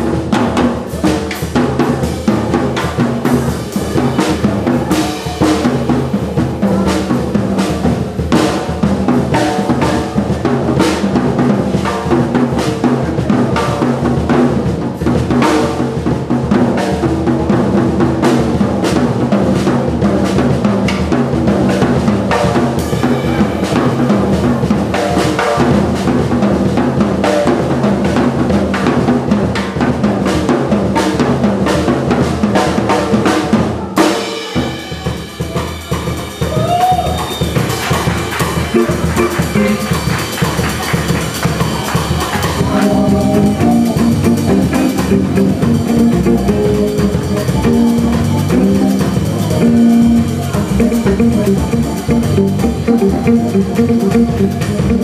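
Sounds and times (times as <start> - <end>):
jazz drum kit: 0.0 - 55.0
organ sustained notes: 38.7 - 40.2, 42.7 - 54.7.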